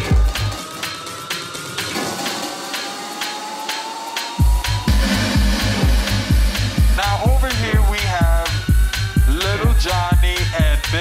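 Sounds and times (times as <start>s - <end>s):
rising synth tone: 0.0s - 9.7s
four-on-the-floor kick drum: 4.4s - 10.9s.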